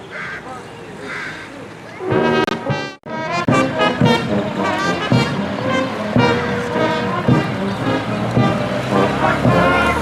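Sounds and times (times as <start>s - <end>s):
brass band playing: 2.0s - 10.0s.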